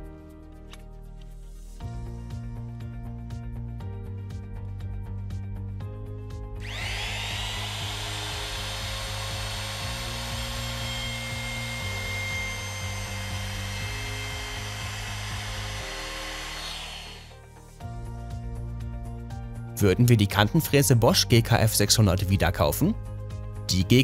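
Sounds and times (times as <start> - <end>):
background music: 0.0 - 24.0
router motor whine: 6.6 - 17.4.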